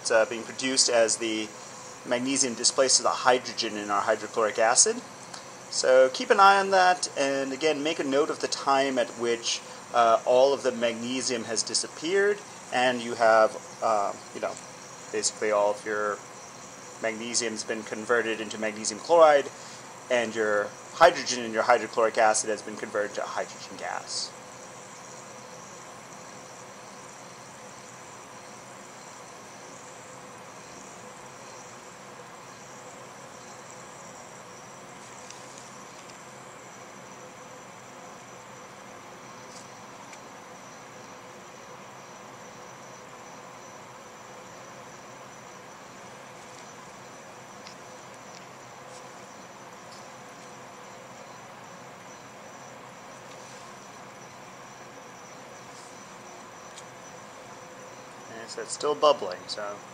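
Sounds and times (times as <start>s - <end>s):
even hiss: 0.0s - 59.9s
high-pitched whine: 0.0s - 59.9s
faint ticks: 5.2s - 5.5s, 35.1s - 36.3s, 47.6s - 51.3s.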